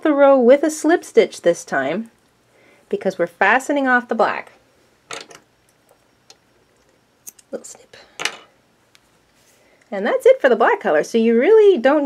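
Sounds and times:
rustle of yarn and hook: 8.8s - 9.6s.

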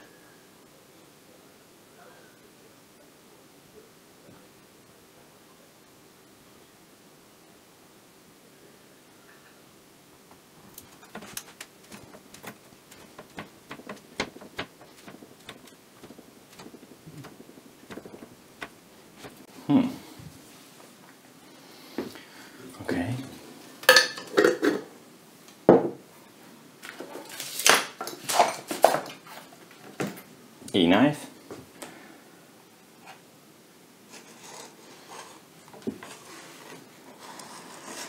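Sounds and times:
tools knocking and clattering: 10.8s - 19.4s.

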